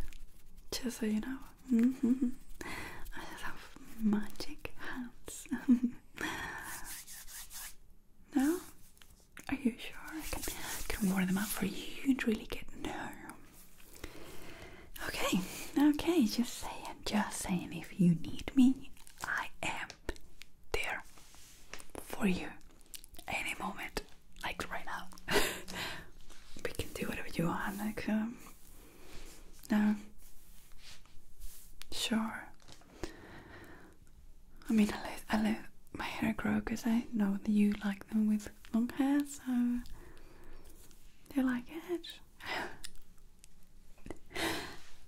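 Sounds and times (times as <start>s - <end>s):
woman whispering: 0.7s - 6.9s, 8.3s - 8.8s, 9.4s - 13.5s, 14.9s - 22.6s, 23.2s - 25.7s, 26.4s - 28.6s, 29.6s - 30.2s, 31.9s - 32.7s, 34.6s - 40.0s, 41.2s - 42.9s.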